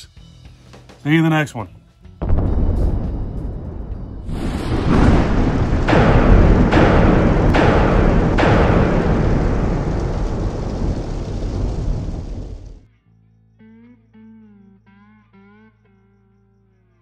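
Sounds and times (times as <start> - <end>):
deep thunder rumble: 2.2 - 12.9
heavy rain: 2.2 - 12.9
sharp thunder cracks: 2.2 - 12.9.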